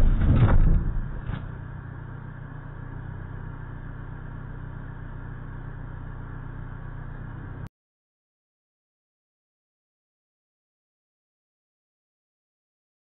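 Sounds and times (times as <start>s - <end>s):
car engine idling: 0.0s - 7.7s.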